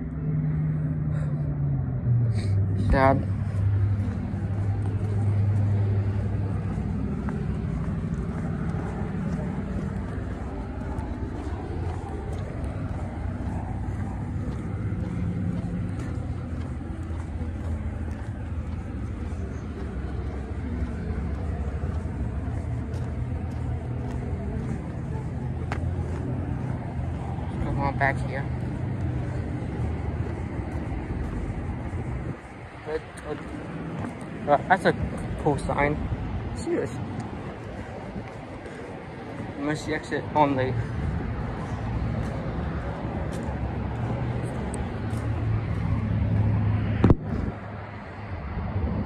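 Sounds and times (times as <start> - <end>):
highway traffic rumble: 0.0 - 49.0.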